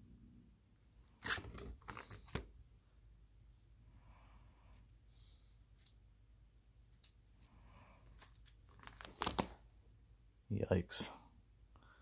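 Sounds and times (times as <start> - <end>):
plastic binder page rustling: 1.2 - 2.5, 8.1 - 9.6.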